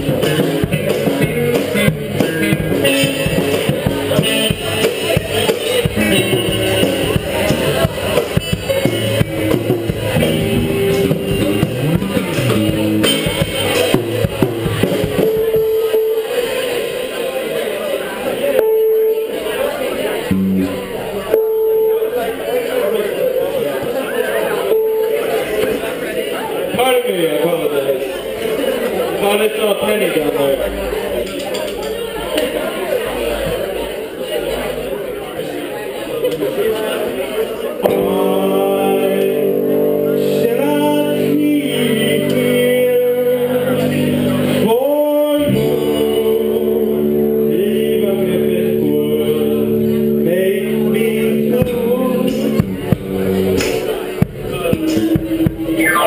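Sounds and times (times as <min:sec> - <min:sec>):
drum kit: 0:00.0 - 0:16.7, 0:51.6 - 0:56.0
electric guitar: 0:00.0 - 0:22.6, 0:24.5 - 0:26.1, 0:37.8 - 0:56.0
keyboard: 0:00.0 - 0:27.0, 0:36.3 - 0:56.0
crowd chatter: 0:00.0 - 0:56.0.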